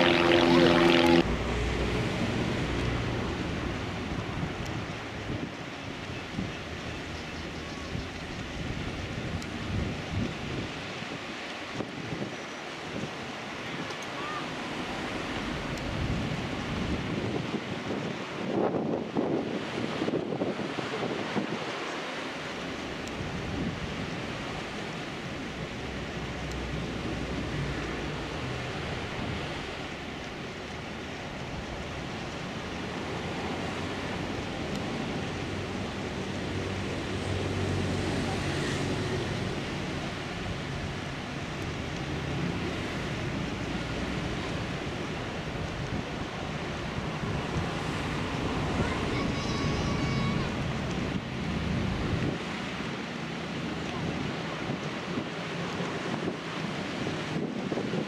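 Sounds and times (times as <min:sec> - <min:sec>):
sea noise: 0:00.0 - 0:58.0
wind buffeting microphone: 0:00.0 - 0:58.0.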